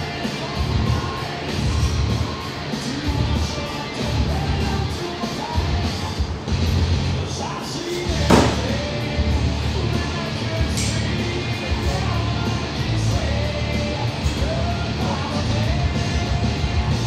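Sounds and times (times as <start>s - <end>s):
rock music with singing: 0.0s - 17.0s
sharp bang: 8.3s - 8.9s.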